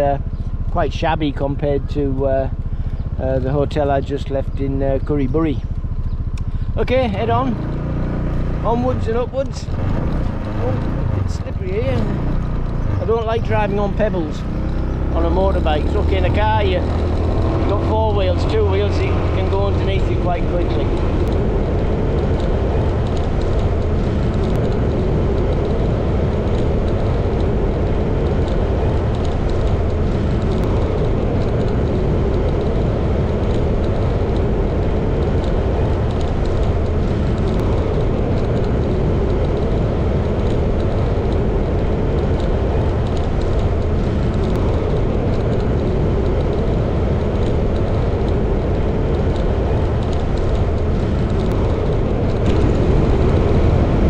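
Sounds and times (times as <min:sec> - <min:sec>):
motorbike engine: 0:00.0 - 0:54.0
wind rushing over microphone: 0:07.2 - 0:54.0.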